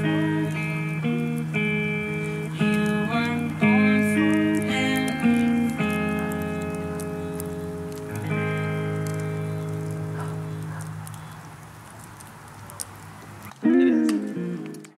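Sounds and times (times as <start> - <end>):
electric guitar chords: 0.0 - 11.0, 13.6 - 14.9
wood fire crackling: 0.0 - 14.9.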